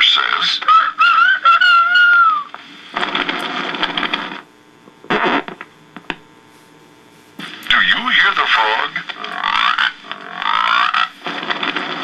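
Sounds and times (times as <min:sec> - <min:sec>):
record hiss: 0:00.0 - 0:12.0.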